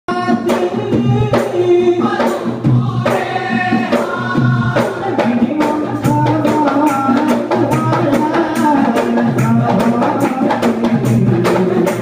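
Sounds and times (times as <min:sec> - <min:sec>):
hand-beaten barrel drums: 0:00.1 - 0:12.0
men singing together: 0:00.1 - 0:12.0.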